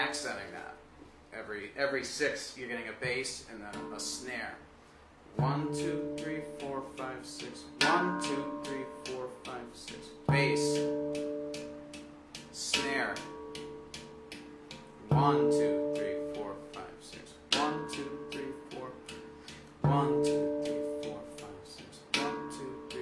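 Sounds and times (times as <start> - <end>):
deep ringing handpan note: 3.7 - 4.5, 5.4 - 23.0.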